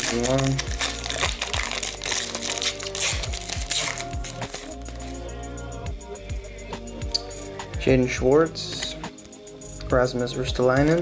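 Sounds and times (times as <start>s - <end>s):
foil wrapper crinkling: 0.0s - 5.2s
music with steady beat: 0.0s - 11.0s.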